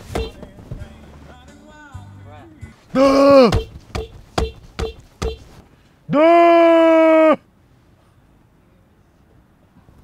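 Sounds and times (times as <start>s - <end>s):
car horn blast: 0.0s - 0.6s, 3.3s - 5.6s.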